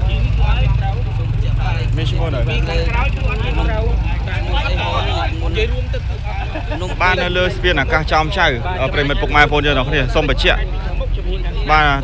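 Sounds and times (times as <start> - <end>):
people talking: 0.0 - 12.0
vehicle engines rumbling: 0.0 - 12.0.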